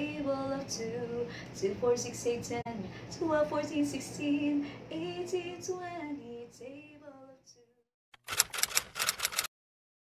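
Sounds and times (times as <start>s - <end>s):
typewriter key clacks: 8.2s - 9.5s.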